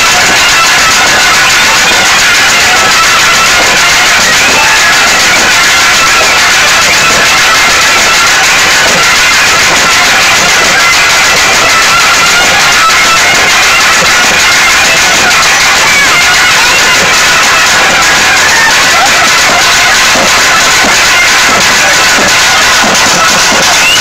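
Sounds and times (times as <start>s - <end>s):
continuous drumming: 0.0s - 24.0s.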